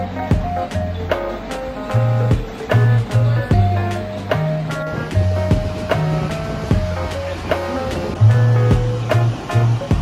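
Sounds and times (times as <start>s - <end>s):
chill music with steady beat: 0.0s - 10.0s.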